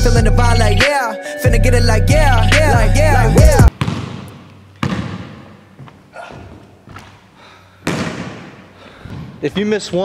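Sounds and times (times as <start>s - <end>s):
basketball bouncing on hardwood floor: 3.7s - 6.0s, 7.8s - 9.4s.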